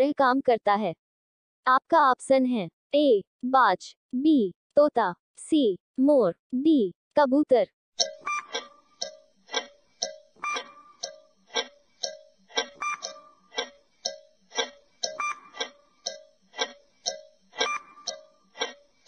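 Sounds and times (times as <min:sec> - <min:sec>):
short beep tone: 0:08.0 - 0:08.5, 0:10.4 - 0:11.0, 0:12.8 - 0:13.4, 0:15.1 - 0:15.6, 0:17.6 - 0:18.3
clock tick-tock: 0:08.0 - 0:19.0.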